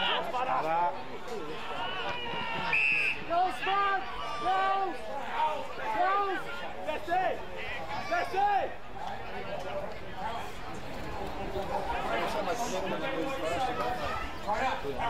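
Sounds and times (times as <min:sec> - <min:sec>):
crowd chatter: 0:00.0 - 0:15.0
people shouting short calls: 0:01.6 - 0:08.8.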